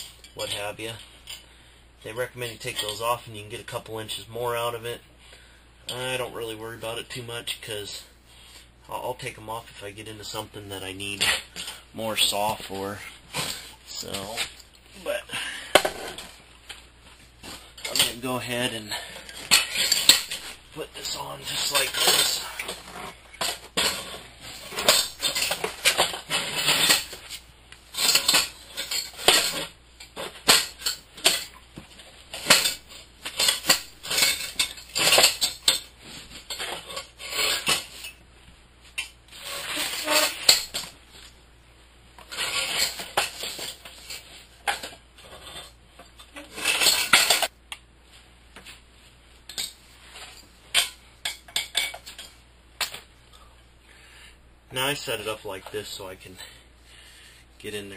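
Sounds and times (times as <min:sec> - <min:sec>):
metal brackets clinking and rattling: 0:17.4 - 0:31.6, 0:32.3 - 0:38.2, 0:42.3 - 0:47.5.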